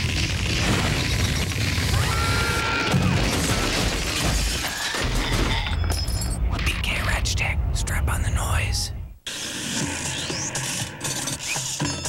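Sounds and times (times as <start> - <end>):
glass shattering: 0.3 - 1.9.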